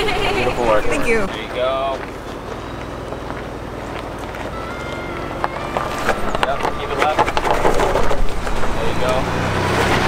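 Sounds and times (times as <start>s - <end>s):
truck engine running low: 0.0s - 10.0s.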